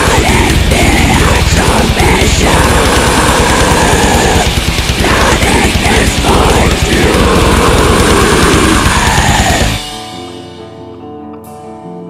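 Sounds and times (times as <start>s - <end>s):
rapid kick drum: 0.0s - 10.0s
distorted electric guitars: 0.0s - 12.0s.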